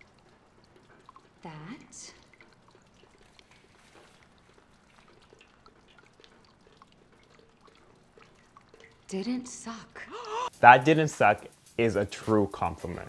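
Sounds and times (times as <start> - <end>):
water dripping: 0.0 - 13.0.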